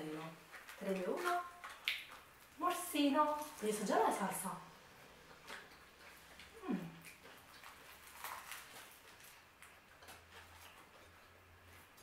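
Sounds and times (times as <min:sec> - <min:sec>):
people chewing food: 0:00.0 - 0:12.0.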